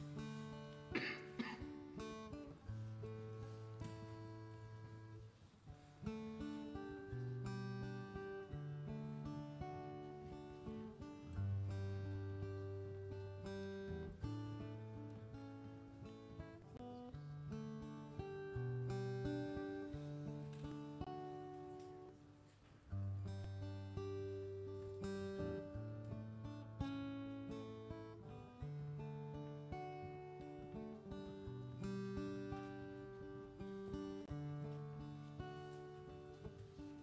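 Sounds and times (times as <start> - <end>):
acoustic guitar strummed chords: 0.0 - 37.0.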